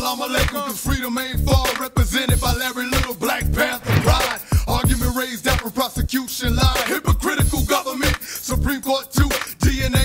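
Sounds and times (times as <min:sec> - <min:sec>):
rapping over a beat: 0:00.0 - 0:10.0
heavy bass drum: 0:03.6 - 0:05.1.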